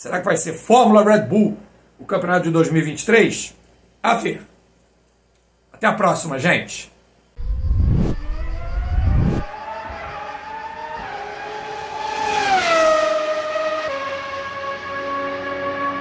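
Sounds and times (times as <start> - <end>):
low booms: 7.4 - 9.5
race car engine passing: 7.4 - 16.0.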